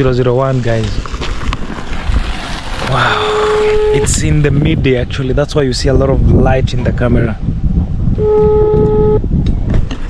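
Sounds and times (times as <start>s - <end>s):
phone ringing tone beep: 3.3s - 4.1s, 8.2s - 9.2s.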